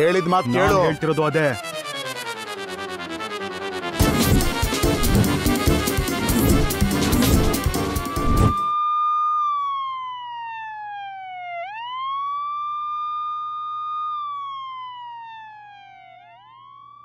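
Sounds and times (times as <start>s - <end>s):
loud music: 0.4s - 8.7s
siren wailing: 0.5s - 1.0s, 4.4s - 17.0s.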